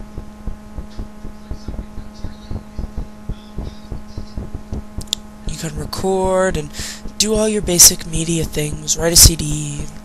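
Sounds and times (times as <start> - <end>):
faint thumping pulse: 0.0 - 10.0
low electrical hum: 0.0 - 10.0.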